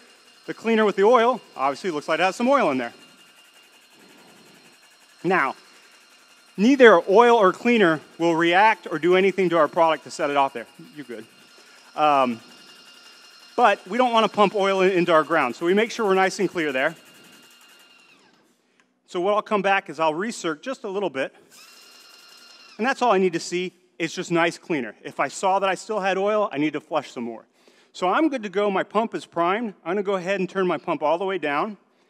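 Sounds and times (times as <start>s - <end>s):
paint sprayer pump whine: 0.0s - 18.5s, 21.5s - 23.1s.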